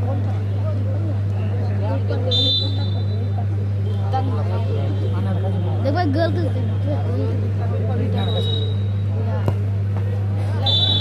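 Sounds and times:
crowd chatter: 0.0s - 11.0s
referee's whistle blast: 2.3s - 3.2s, 10.6s - 11.0s.

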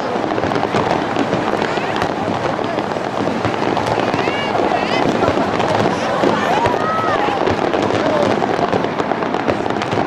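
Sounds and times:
crowd chatter: 0.0s - 10.0s
fireworks bursting and crackling: 0.0s - 10.0s.

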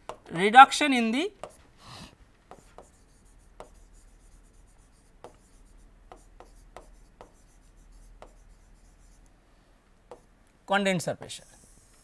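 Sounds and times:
stylus tapping on tablet screen: 0.0s - 0.3s, 1.4s - 1.6s, 2.5s - 9.2s, 10.0s - 10.3s.

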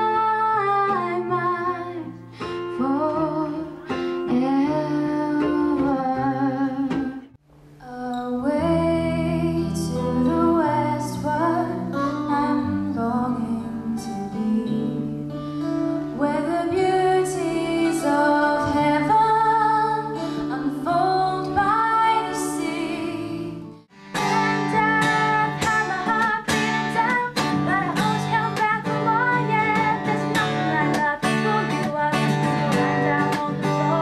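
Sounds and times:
woman singing: 0.0s - 15.3s, 16.1s - 34.0s
acoustic guitar: 0.0s - 34.0s.

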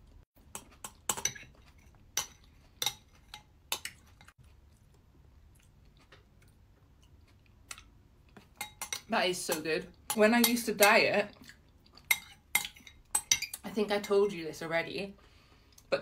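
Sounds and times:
chewing with crunches: 3.8s - 8.6s.

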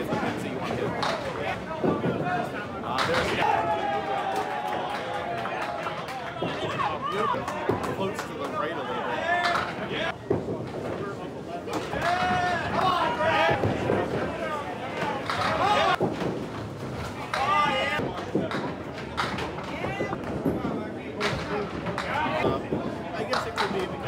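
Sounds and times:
knocks and thuds: 15.4s - 23.0s.

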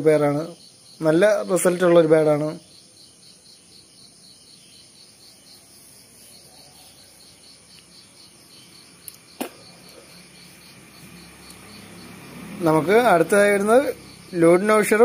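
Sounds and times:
insect chirping: 0.0s - 15.0s.

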